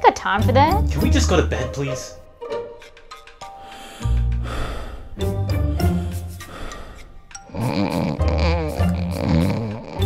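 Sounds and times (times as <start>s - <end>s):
person snoring loudly: 3.7s - 10.0s.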